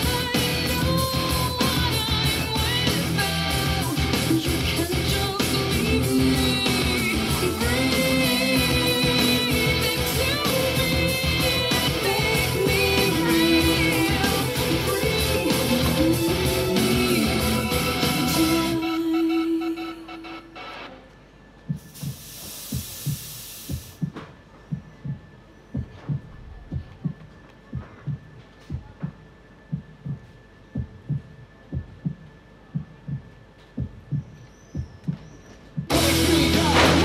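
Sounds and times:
loud rock music: 0.0 - 18.9, 35.9 - 37.0
fog machine hiss: 21.7 - 24.1
heartbeat sound effect: 21.7 - 36.0.

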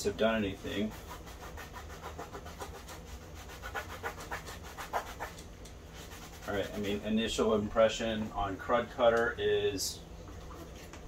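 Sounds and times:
rag scrubbing on plastic: 0.7 - 7.2.

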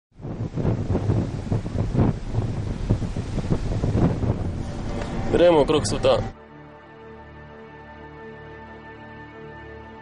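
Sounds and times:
wind buffeting microphone: 0.1 - 6.4.

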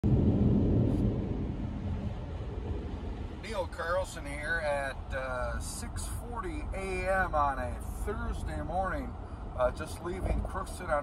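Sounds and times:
car road and engine rumble: 0.0 - 11.0.

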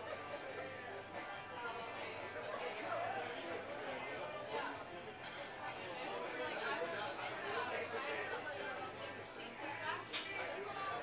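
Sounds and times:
babble of overlapping voices: 0.0 - 11.0.

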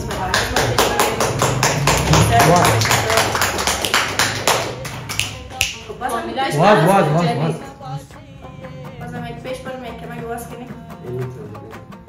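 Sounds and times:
fast sharp taps: 0.0 - 5.9.

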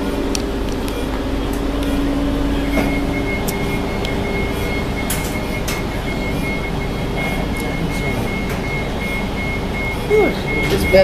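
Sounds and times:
bus engine and road rumble: 0.0 - 11.0
high-pitched whine: 0.0 - 11.0.

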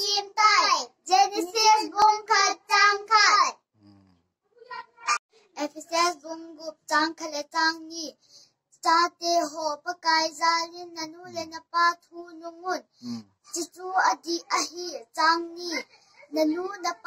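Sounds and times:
girl singing unaccompanied: 0.0 - 3.5, 5.6 - 8.2, 8.8 - 12.9, 13.5 - 17.0.

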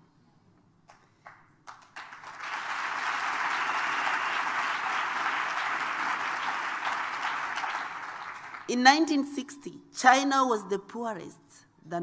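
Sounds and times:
audience applauding: 1.2 - 8.7.

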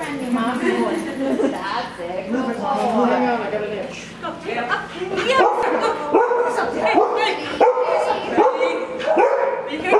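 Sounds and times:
small dog barking: 5.4 - 9.9.

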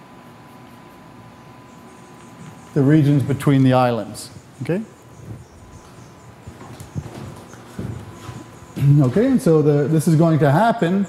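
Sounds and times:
faint room hum: 0.0 - 11.0
footsteps on hard floor: 5.2 - 9.5.

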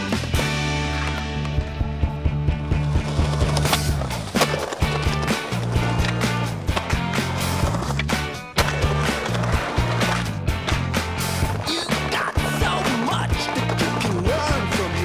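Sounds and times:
music soundtrack: 0.0 - 15.0
skateboard wheels rolling on concrete: 0.0 - 15.0
skateboard clacking: 2.8 - 15.0.

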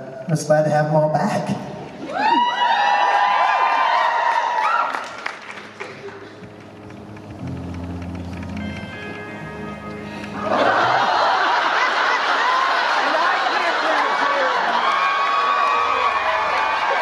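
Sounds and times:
electric guitar notes: 5.5 - 11.7
low held notes: 5.7 - 11.8.

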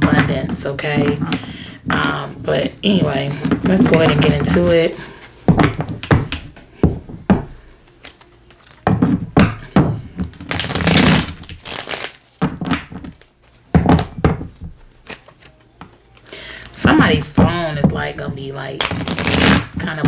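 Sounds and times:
cards rustling while shuffled: 7.5 - 8.8, 10.2 - 16.8, 18.8 - 19.8.

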